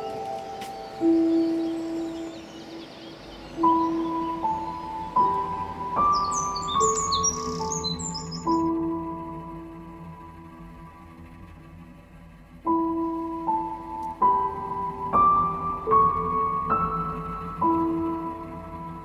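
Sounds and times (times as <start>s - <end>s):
high bird chirps: 0.0s - 9.4s
slow instrumental music: 0.0s - 19.0s.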